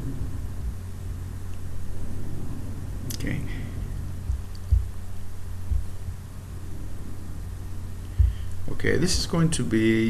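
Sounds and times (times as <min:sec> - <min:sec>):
dull low thumps: 0:00.0 - 0:09.4
low electrical hum: 0:00.0 - 0:10.0.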